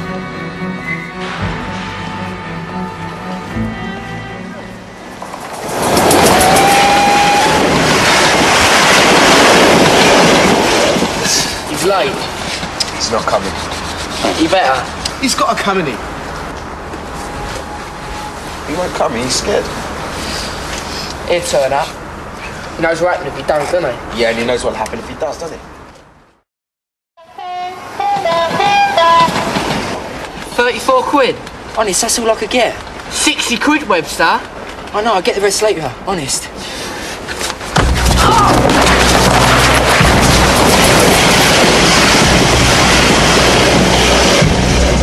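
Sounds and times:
locomotive horn alternating notes: 0.0 - 5.3, 17.0 - 18.7, 27.2 - 29.7
high whine: 0.0 - 8.5, 37.8 - 45.0
train passing close by: 0.0 - 24.8, 27.2 - 34.9, 39.5 - 45.0.

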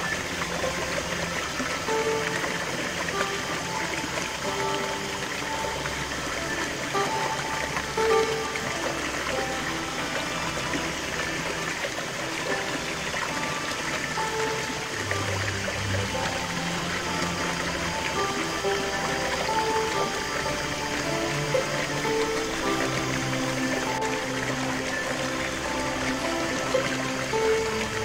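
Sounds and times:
music of held notes: 0.0 - 28.0
stream splashing over rocks: 0.0 - 28.0.

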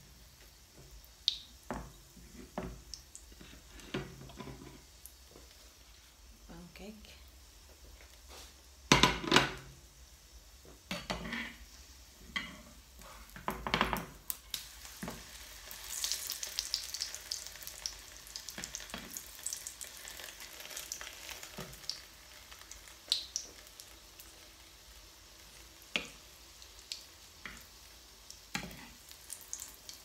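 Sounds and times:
pancake sizzling in oil: 0.0 - 30.0
spatula scraping frying pan: 28.5 - 29.0.

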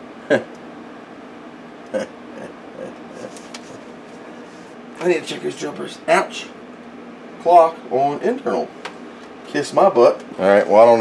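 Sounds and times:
steady machine hum: 0.0 - 11.0
man grunting: 1.9 - 3.4.

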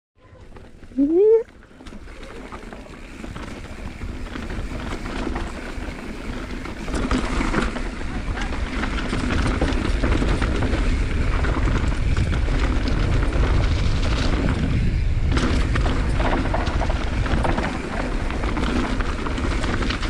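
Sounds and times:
bike tyre noise: 0.2 - 20.0
bike clattering over bumps: 0.4 - 20.0
wind on microphone: 8.1 - 20.0.

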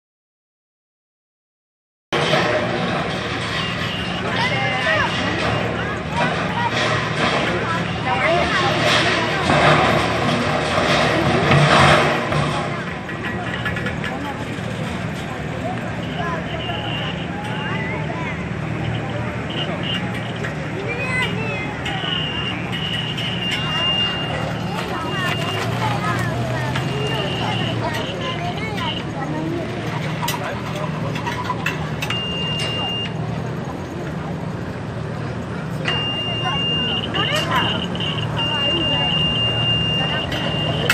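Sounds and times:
car engine droning: 2.2 - 40.9
high-pitched tone: 18.8 - 26.2.

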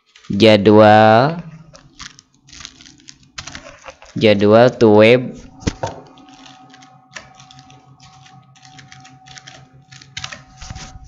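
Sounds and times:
computer keyboard typing: 1.8 - 4.2, 6.1 - 11.0.

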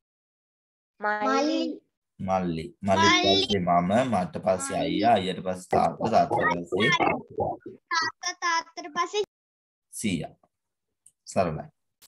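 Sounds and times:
person talking: 2.8 - 8.4.

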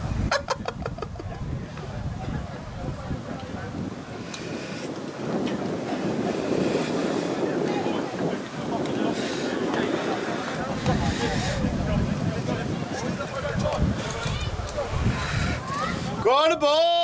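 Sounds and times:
wind buffeting microphone: 0.0 - 17.0
distant voices: 1.2 - 16.6.

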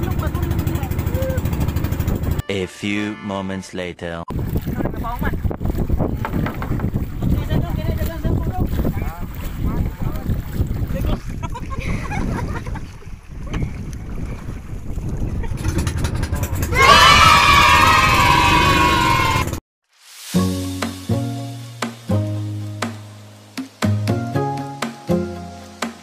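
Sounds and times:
wind buffeting microphone: 0.0 - 2.4, 4.3 - 18.3.

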